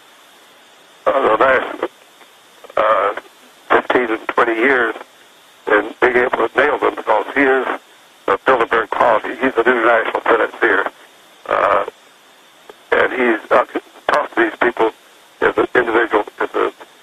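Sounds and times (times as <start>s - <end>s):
person talking: 1.1s - 1.9s, 2.6s - 5.0s, 5.7s - 10.9s, 11.5s - 11.9s, 12.8s - 16.8s.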